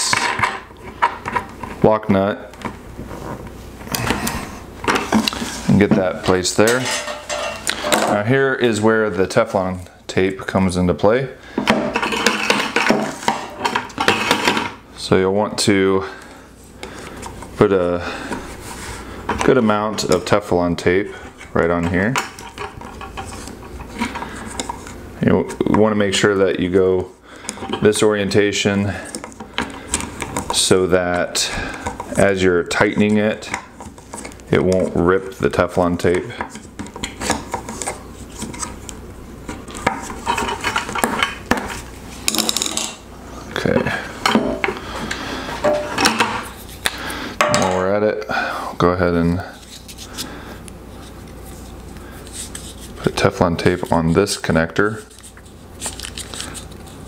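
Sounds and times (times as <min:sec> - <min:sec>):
tape rubbing and ticking: 0:21.4 - 0:25.0, 0:50.9 - 0:57.0.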